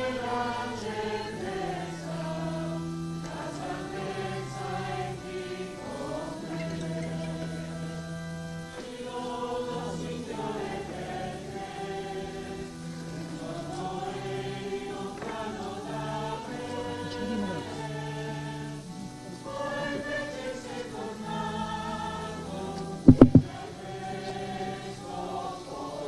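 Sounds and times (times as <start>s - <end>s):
choir singing a hymn: 0.0s - 26.0s.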